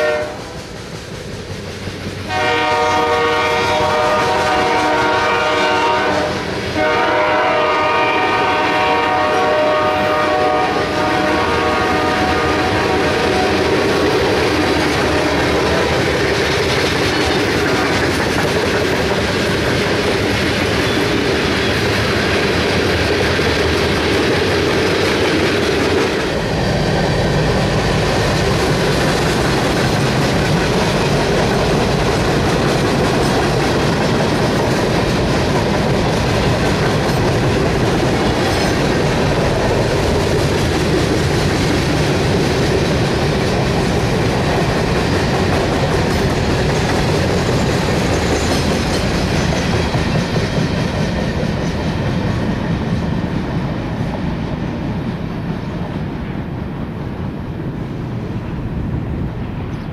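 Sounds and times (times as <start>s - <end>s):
train horn: 0.0s - 0.7s, 2.3s - 14.1s
freight cars rumbling and clattering: 12.0s - 54.2s.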